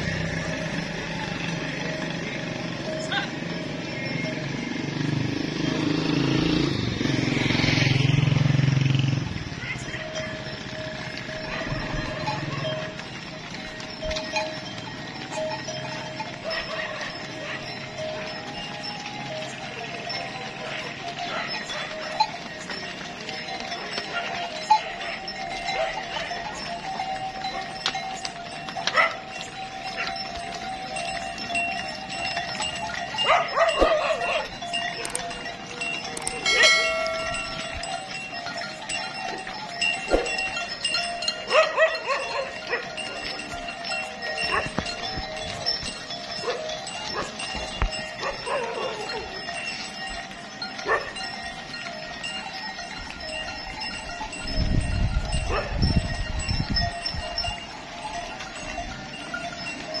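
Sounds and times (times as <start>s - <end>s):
cattle walking on road: 0.0s - 60.0s
cattle calling: 5.6s - 56.0s.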